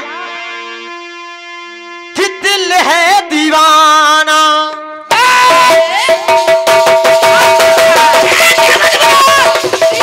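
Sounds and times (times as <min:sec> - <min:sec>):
harmonium holding a chord: 0:00.0 - 0:03.6
person singing: 0:07.1 - 0:10.0.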